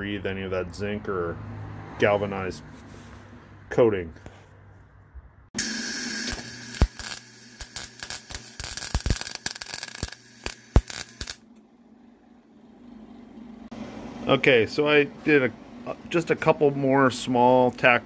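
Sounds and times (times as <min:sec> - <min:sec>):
arc welder crackling and popping: 0:05.6 - 0:11.4.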